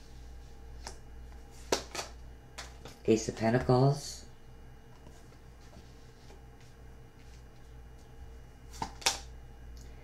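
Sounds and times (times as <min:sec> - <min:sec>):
cards snapping: 0:01.6 - 0:03.0, 0:08.7 - 0:09.3.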